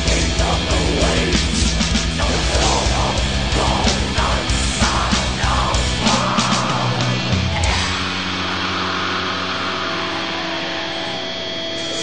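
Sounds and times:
distorted heavy metal guitar: 0.0s - 12.0s.

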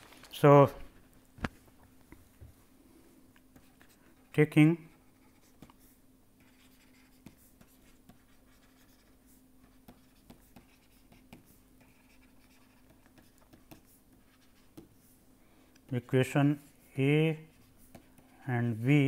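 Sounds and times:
steady low hum: 0.0s - 19.0s
pen scratching on paper: 5.0s - 15.2s.

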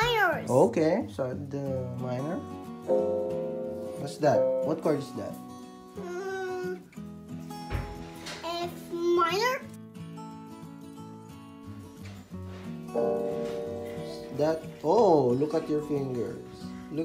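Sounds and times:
electronic keyboard chords: 2.8s - 6.0s, 12.9s - 17.0s.

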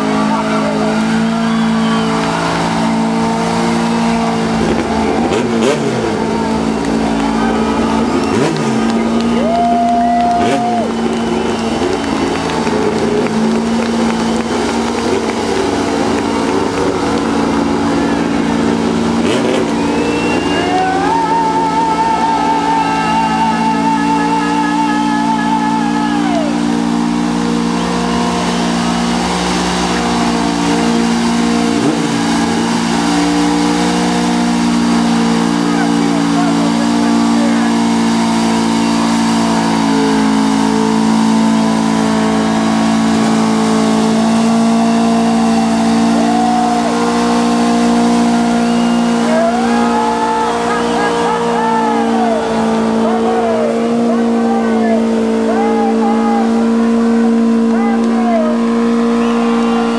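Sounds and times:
engine at high revs: 0.0s - 59.9s
tyres spinning on tarmac: 0.0s - 59.9s
wavering tyre squeals: 0.0s - 59.9s.

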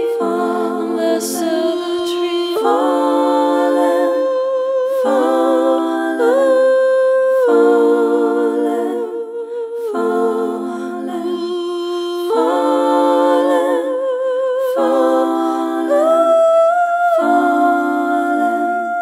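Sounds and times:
layered vocals humming in harmony: 0.0s - 19.0s.

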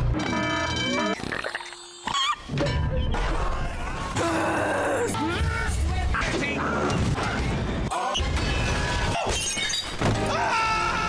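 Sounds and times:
animated film music: 0.0s - 11.0s.

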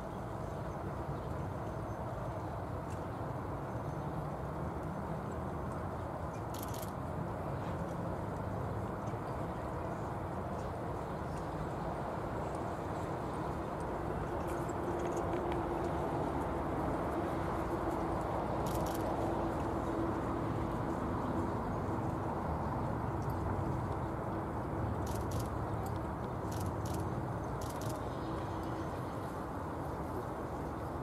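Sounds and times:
steady outdoor noise: 0.0s - 31.0s
hooves trotting on sand: 11.0s - 30.8s
faint clicks: 25.0s - 28.8s.

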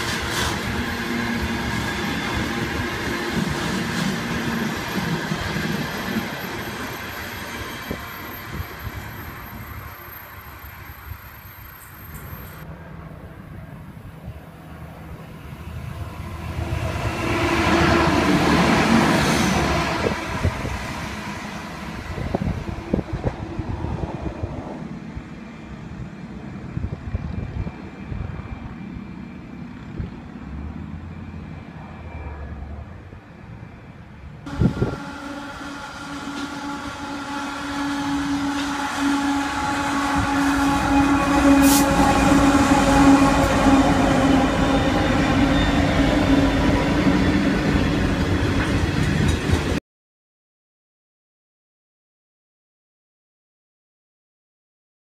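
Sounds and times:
high wheel squeal: 0.0s - 12.6s, 34.5s - 49.3s
passenger train rushing past: 0.0s - 49.8s.

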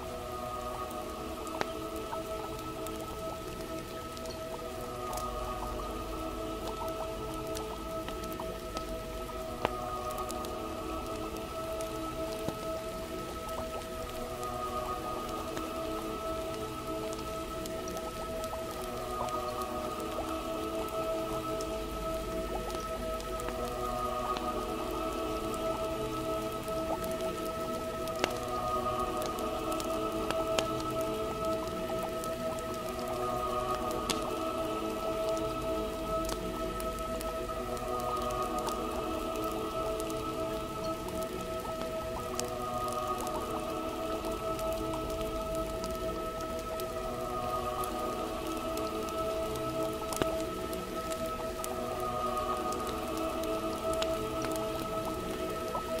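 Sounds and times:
soft music of held chords: 0.0s - 56.0s
steady rain: 0.0s - 56.0s
wood fire crackling: 0.0s - 56.0s.

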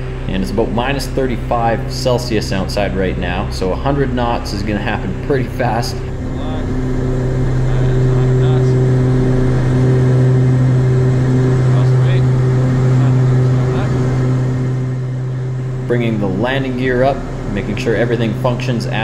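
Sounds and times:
turboprop propeller drone: 0.0s - 19.0s.

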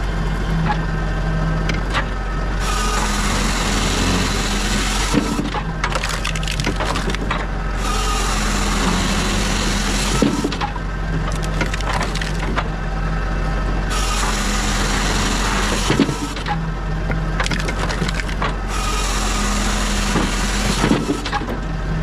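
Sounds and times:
wood creaking and crackling: 5.0s - 7.5s, 10.1s - 12.7s, 15.7s - 18.7s
wood cracking sharply: 5.1s - 7.5s, 10.2s - 12.7s, 17.4s - 18.6s.

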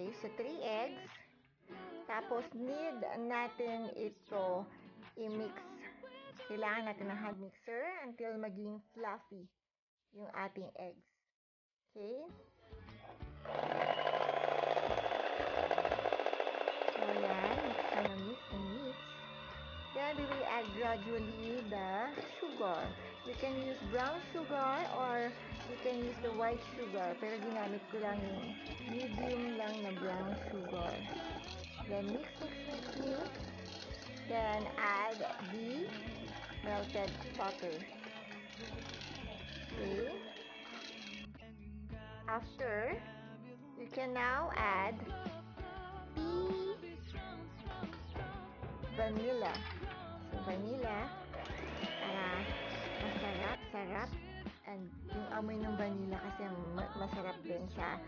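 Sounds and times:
background music with singing: 0.0s - 7.3s, 12.4s - 14.0s, 16.9s - 58.0s
electric hand mixer running: 13.2s - 41.3s, 49.0s - 53.7s
beaters whipping eggs in steel bowl: 13.4s - 41.3s, 47.8s - 53.7s.

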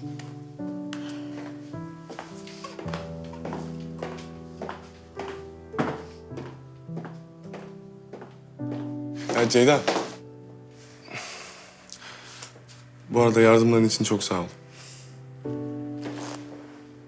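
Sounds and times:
footsteps on hard floor: 0.0s - 10.7s, 15.6s - 16.9s
soft background music: 0.0s - 17.0s.

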